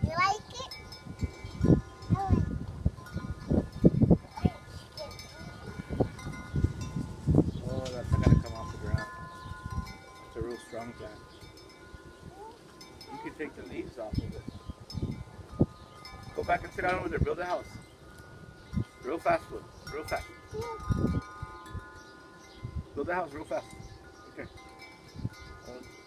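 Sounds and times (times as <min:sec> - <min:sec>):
wind chimes ringing: 0:00.0 - 0:26.0.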